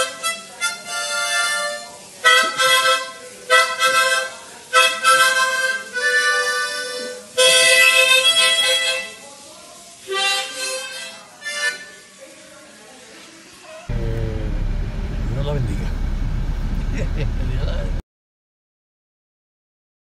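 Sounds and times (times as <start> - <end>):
harmonica melody: 0.0 - 9.2, 10.1 - 12.0.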